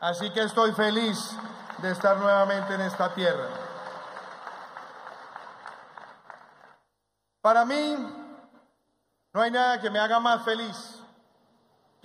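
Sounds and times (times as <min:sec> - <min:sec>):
audience applause: 0:00.4 - 0:06.8.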